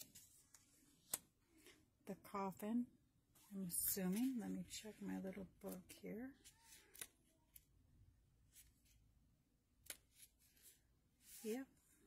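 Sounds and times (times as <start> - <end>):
faint paper rustling: 0.0 - 1.8, 3.3 - 7.7, 8.4 - 9.1, 9.8 - 12.0.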